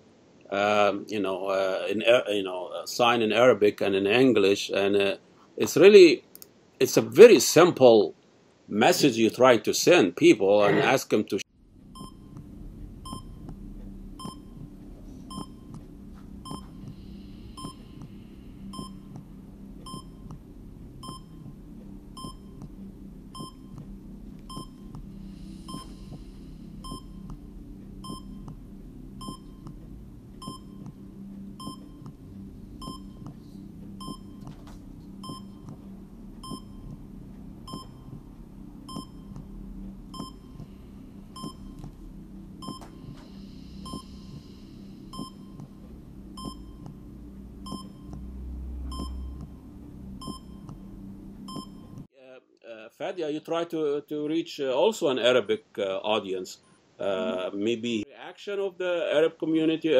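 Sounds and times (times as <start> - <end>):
steady low hum: 0.0 - 52.2, 53.1 - 59.9
short electronic beeps: 12.0 - 12.4, 13.0 - 13.5, 14.2 - 14.6, 15.3 - 15.7, 16.4 - 16.8, 17.5 - 18.0, 18.7 - 19.1, 21.0 - 21.5, 24.5 - 24.9, 29.2 - 29.7, 32.8 - 33.2, 34.0 - 34.4, 35.2 - 35.7, 36.4 - 36.9, 37.7 - 38.2, 38.9 - 39.4, 40.1 - 40.6, 41.4 - 41.8, 42.6 - 44.5, 45.1 - 45.6, 46.4 - 46.9, 47.6 - 48.2, 48.9 - 49.6, 50.2 - 50.9, 51.5 - 52.0.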